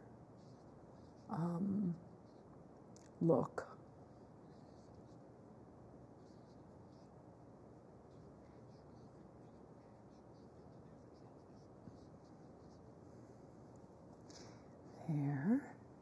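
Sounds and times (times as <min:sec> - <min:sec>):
paintbrush scratching on canvas: 0:06.1 - 0:07.3, 0:08.0 - 0:13.6.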